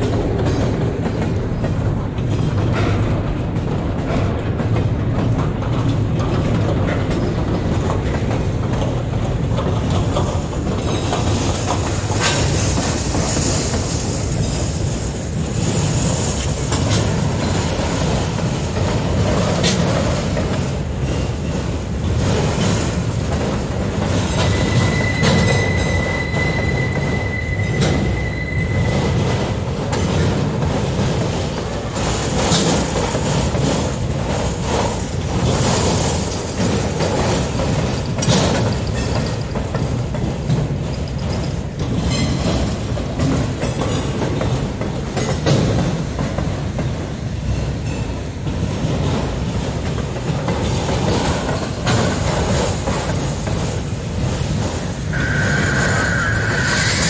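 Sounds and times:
train wheels rumbling on rail: 0:00.0 - 0:57.0
high wheel squeal: 0:24.3 - 0:29.5, 0:55.0 - 0:57.0.

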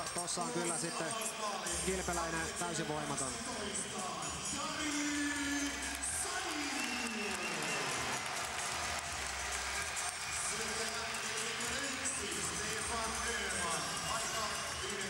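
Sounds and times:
music: 0:00.0 - 0:15.0
arena crowd cheering: 0:04.6 - 0:15.0.

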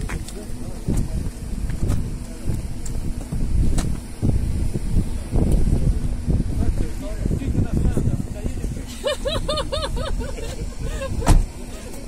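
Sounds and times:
wind buffeting microphone: 0:00.0 - 0:11.7.

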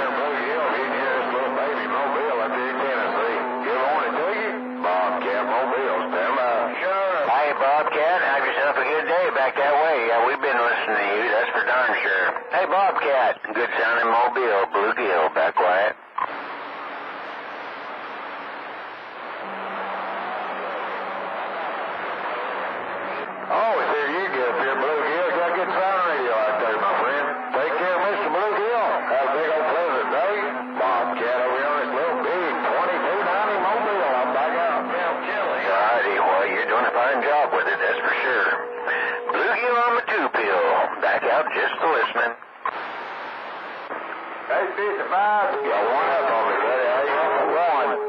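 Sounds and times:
weak garbled radio voices: 0:00.0 - 0:19.6, 0:22.4 - 0:48.0
radio static hissing: 0:00.0 - 0:48.0
steady low tones: 0:00.1 - 0:12.6, 0:16.0 - 0:41.6.

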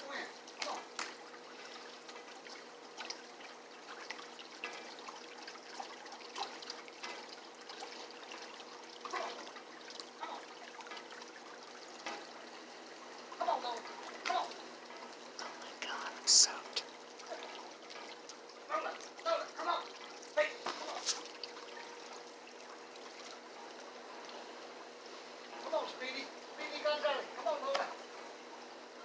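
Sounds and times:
pool water trickling: 0:00.0 - 0:29.0.

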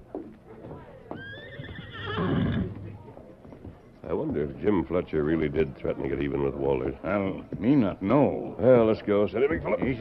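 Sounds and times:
horse whinnying: 0:01.2 - 0:02.8.

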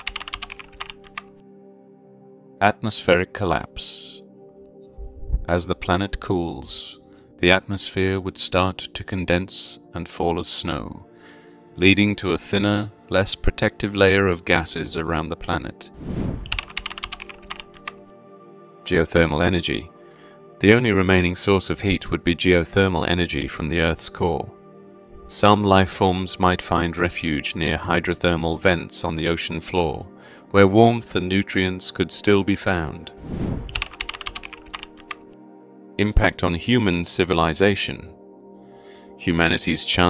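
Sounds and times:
keyboard typing clicks: 0:00.0 - 0:01.3, 0:16.5 - 0:18.0, 0:33.7 - 0:35.2
soft background music: 0:00.0 - 0:40.0
short whoosh: 0:16.0 - 0:16.5, 0:33.2 - 0:33.7.

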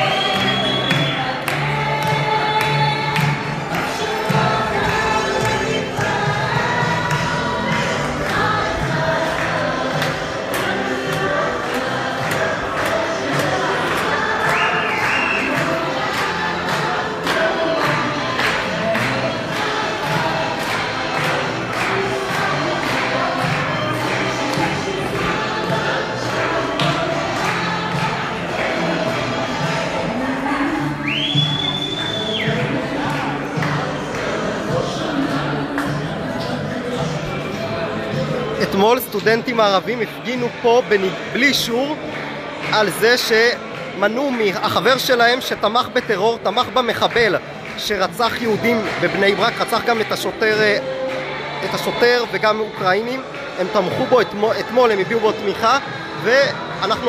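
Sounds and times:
shrill sliding whistle: 0:00.0 - 0:01.2
crowd singing in unison: 0:00.0 - 0:57.0.

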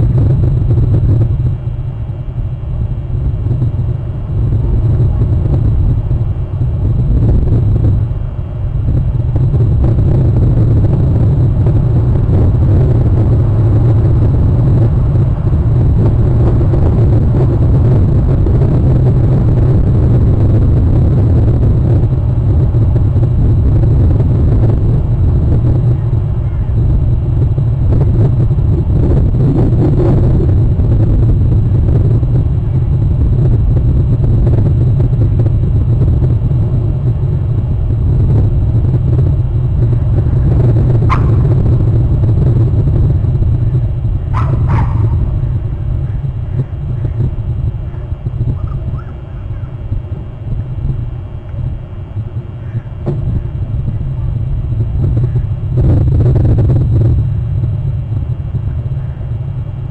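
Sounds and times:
loud steady low rumble: 0:00.0 - 0:59.9.

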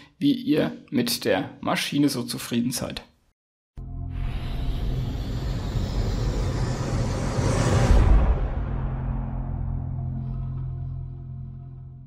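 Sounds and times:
low drone: 0:03.8 - 0:12.0
rushing rumbling swell: 0:04.3 - 0:10.5
deep hit: 0:06.4 - 0:11.3.

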